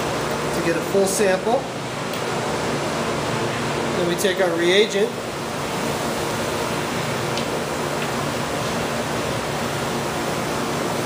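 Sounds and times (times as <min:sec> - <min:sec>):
machinery and ventilation rushing: 0:00.0 - 0:11.0.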